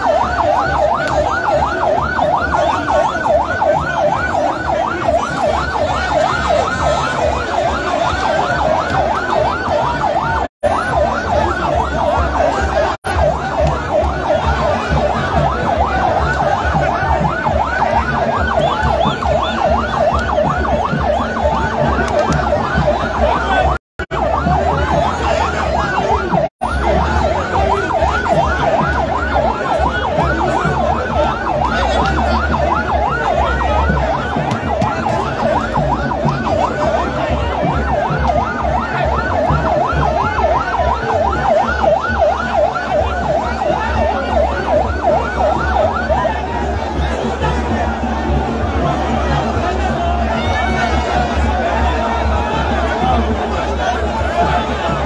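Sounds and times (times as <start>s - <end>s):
electronic yelp siren: 0.0s - 55.0s
large crowd noise: 0.0s - 55.0s.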